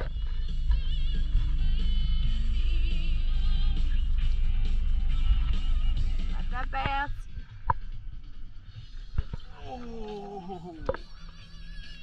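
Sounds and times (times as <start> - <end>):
person exclaiming: 9.6 - 10.9.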